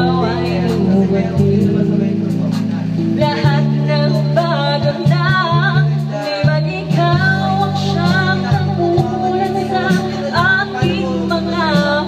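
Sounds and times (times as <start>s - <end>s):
karaoke backing track with guitar: 0.0s - 12.0s
woman singing karaoke: 0.0s - 12.0s.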